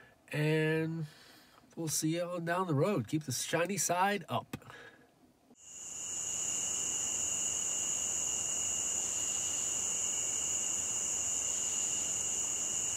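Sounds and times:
night insects chorus: 5.6s - 12.9s.

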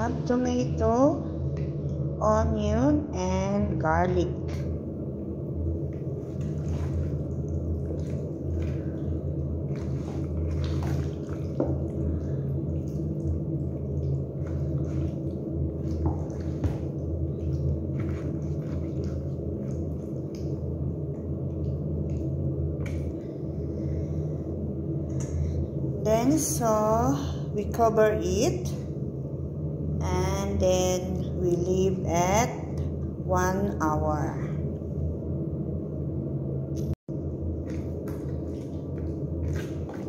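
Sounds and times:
steady low hum: 0.0s - 40.0s
wet squelching of chicken being stirred: 5.9s - 23.8s, 37.6s - 40.0s.

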